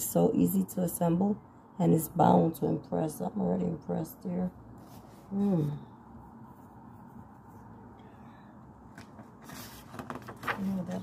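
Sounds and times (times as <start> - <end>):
book rustling and knocking: 8.9 - 11.0.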